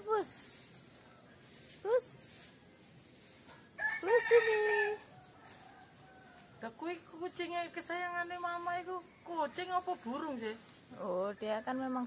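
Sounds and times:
rooster crowing: 3.8s - 6.6s.

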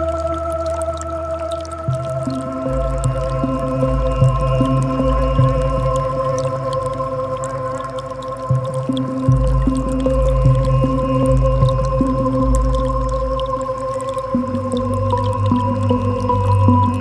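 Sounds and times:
ambient synth music: 0.0s - 17.0s
creek water trickling: 0.0s - 17.0s.

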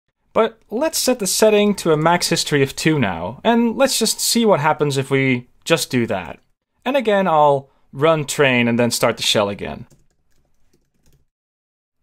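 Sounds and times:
computer keyboard typing: 9.9s - 11.3s.

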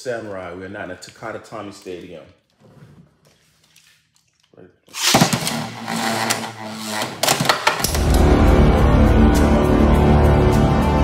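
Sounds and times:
dramatic music with heavy beat: 7.9s - 11.0s.

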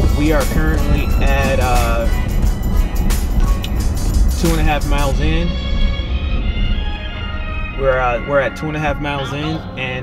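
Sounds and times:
music with a steady beat: 0.0s - 7.8s
truck cabin drone: 0.0s - 10.0s.

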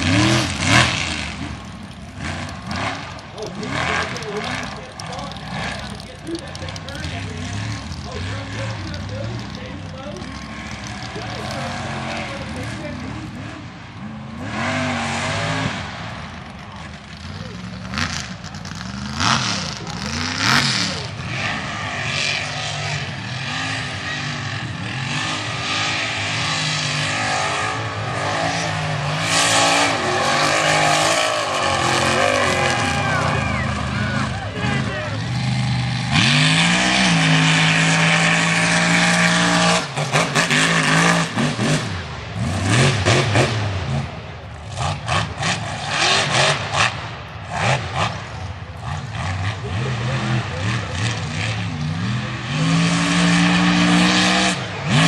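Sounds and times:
truck engines revving: 0.0s - 55.0s.

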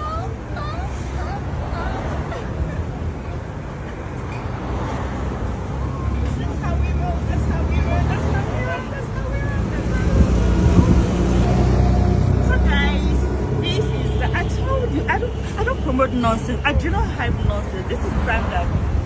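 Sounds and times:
faint voices: 0.0s - 19.0s
low rumble of passing vehicles: 0.0s - 19.0s.

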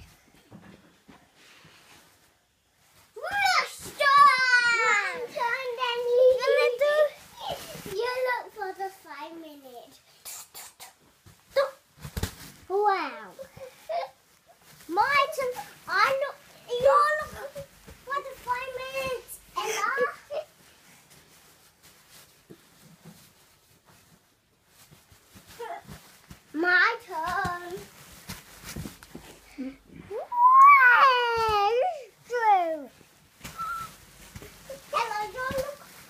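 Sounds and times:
child yelping: 30.1s - 32.6s.

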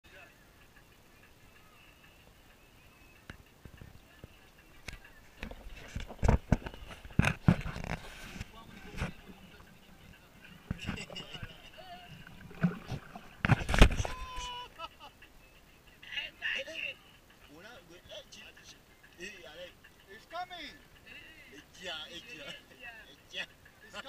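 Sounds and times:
water slapping against boat: 5.4s - 14.5s.

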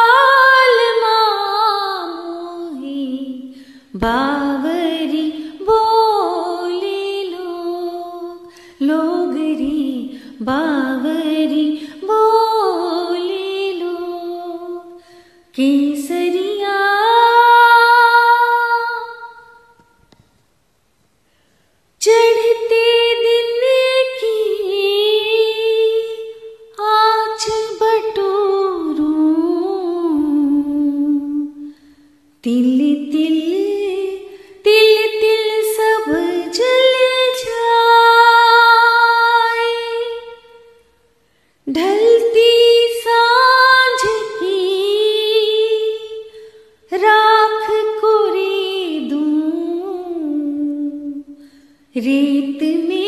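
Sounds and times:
woman singing unaccompanied: 0.0s - 19.8s, 22.0s - 31.8s, 32.4s - 40.8s, 41.7s - 53.0s.

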